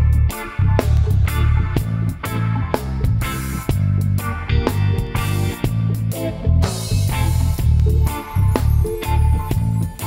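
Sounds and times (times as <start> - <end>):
bass guitar line: 0.0 - 10.0
electric guitars: 0.0 - 10.0
drum kit hits: 0.3 - 4.1.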